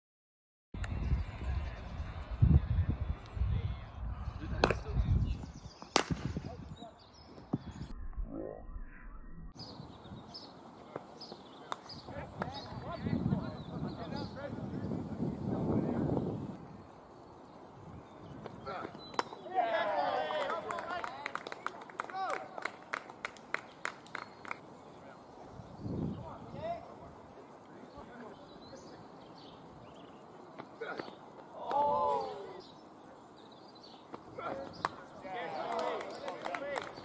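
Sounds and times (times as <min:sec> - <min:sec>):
players shouting and cheering: 0:00.8 - 0:05.4, 0:18.6 - 0:21.4, 0:31.5 - 0:32.7, 0:34.3 - 0:37.0
bat hitting cricket ball: 0:04.6 - 0:04.8, 0:05.9 - 0:06.4
hand claps: 0:20.3 - 0:24.6, 0:35.6 - 0:37.0.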